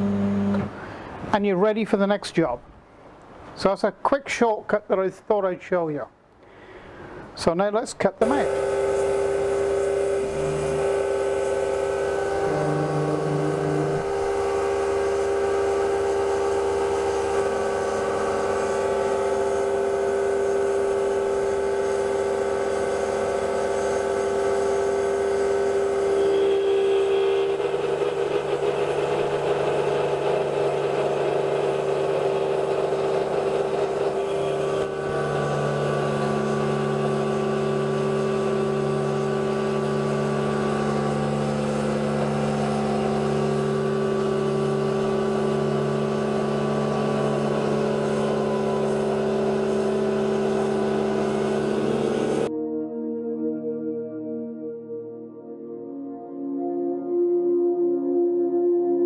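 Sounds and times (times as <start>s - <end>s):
milling machine whine: 8.2s - 52.5s.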